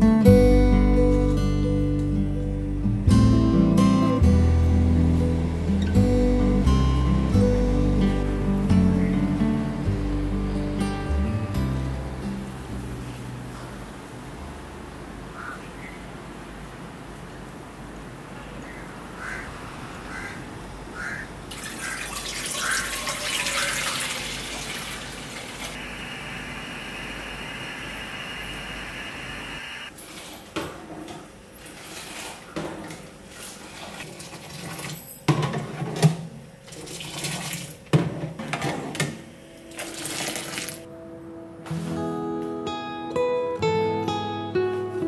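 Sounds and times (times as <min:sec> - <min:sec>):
tap water running: 0:21.5 - 0:28.1, 0:36.6 - 0:37.9, 0:39.7 - 0:40.9.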